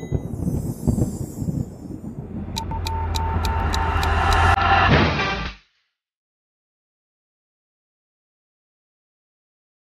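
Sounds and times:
low rumble: 0.2 - 5.6
pulsing beep: 2.6 - 4.6.

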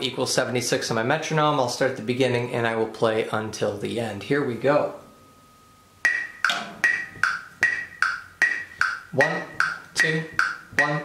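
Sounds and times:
metronome clicking: 6.0 - 11.0.

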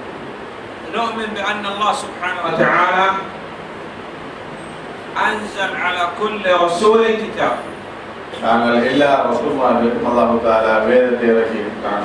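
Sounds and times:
steady background hiss: 0.0 - 12.0
man's voice: 0.9 - 3.3.

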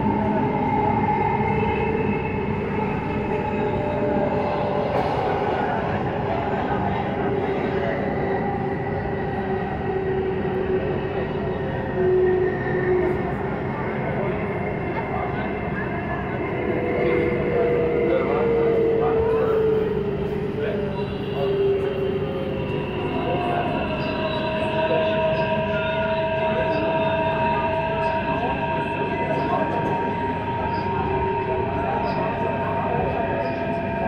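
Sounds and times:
train rumble: 0.0 - 34.0.

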